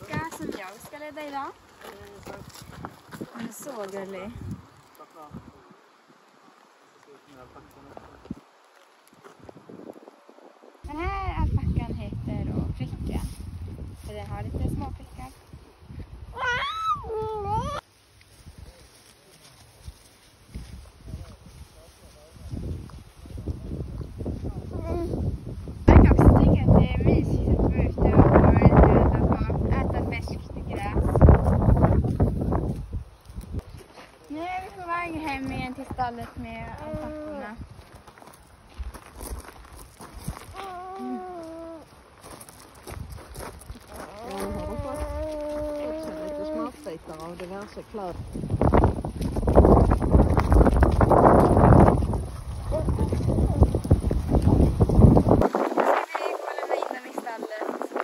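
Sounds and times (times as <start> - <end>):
footsteps scuffing: 0.0 - 4.6, 31.4 - 55.9
alpaca humming: 40.5 - 41.9, 44.0 - 46.9.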